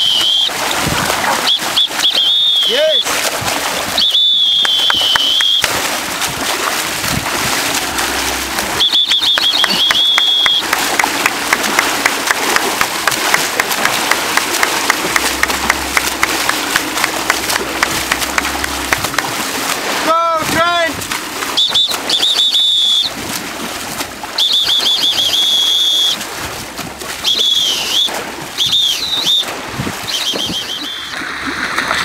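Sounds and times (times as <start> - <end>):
high held whistle-like tone: 0.0 - 0.5, 1.4 - 3.1, 4.0 - 5.7, 8.4 - 10.7, 21.5 - 23.2, 24.4 - 26.2, 27.2 - 31.2
small splash ticks: 0.0 - 32.0
water splashing and rushing: 0.0 - 32.0.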